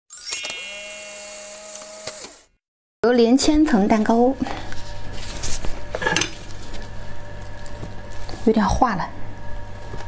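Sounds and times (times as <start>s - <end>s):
bright chime-like ring: 0.1s - 1.6s.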